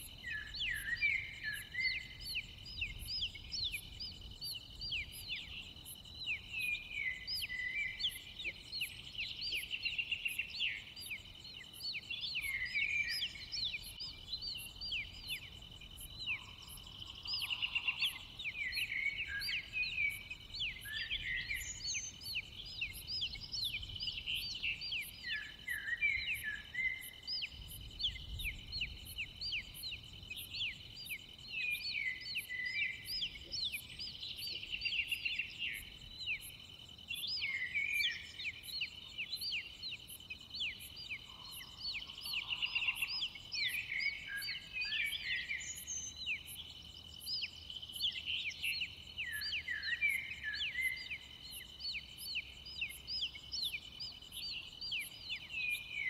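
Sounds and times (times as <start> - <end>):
small birds chirping: 0.0 - 56.0.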